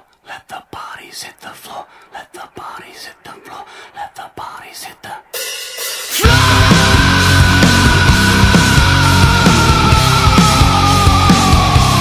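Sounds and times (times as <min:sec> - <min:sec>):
person whispering: 0:00.0 - 0:05.4.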